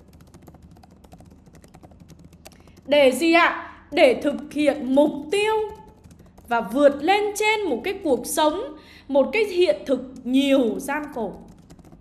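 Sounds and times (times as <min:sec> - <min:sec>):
computer keyboard typing: 0:00.0 - 0:08.0, 0:10.0 - 0:12.0.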